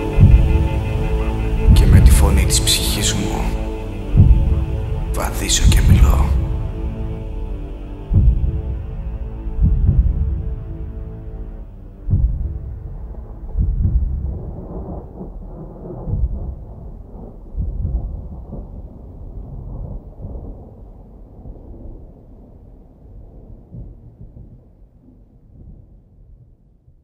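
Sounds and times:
thunder rolling: 4.1 - 6.8, 12.0 - 26.7.

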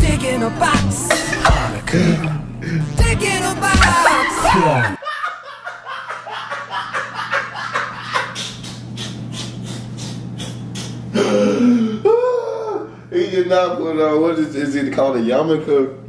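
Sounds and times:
man laughing hard: 1.0 - 2.8, 3.6 - 12.9.

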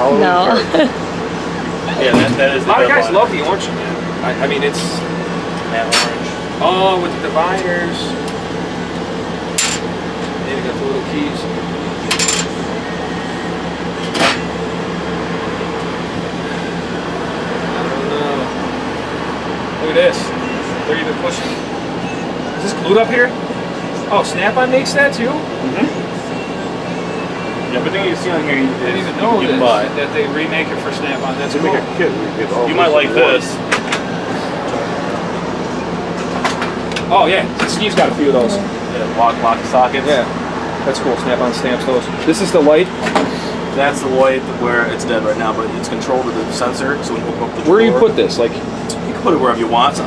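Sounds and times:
air conditioning hum: 0.0 - 50.0.

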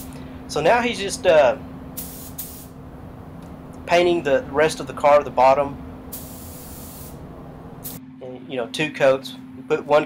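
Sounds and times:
steady low hum: 0.0 - 10.0
paint spray gun hissing: 2.0 - 2.8, 6.1 - 7.2.

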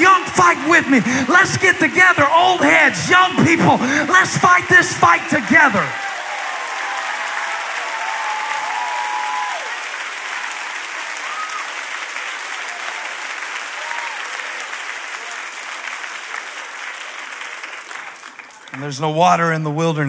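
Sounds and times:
crowd applauding: 0.0 - 19.2.

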